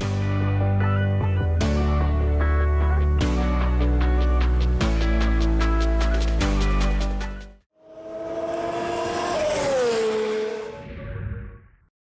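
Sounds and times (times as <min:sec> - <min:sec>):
outro music: 0:01.7 - 0:07.6
race car passing by: 0:07.8 - 0:11.0.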